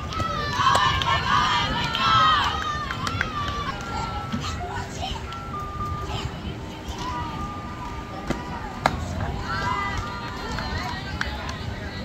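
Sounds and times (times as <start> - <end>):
girls shouting and cheering: 0.0 - 5.2.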